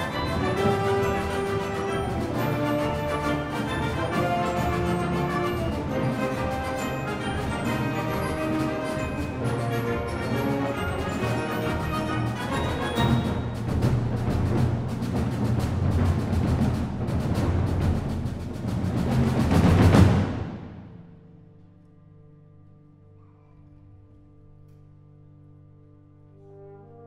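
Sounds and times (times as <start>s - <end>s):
symphonic wind band playing: 0.0s - 20.9s, 26.1s - 27.0s
rapid drum strokes: 0.0s - 21.2s.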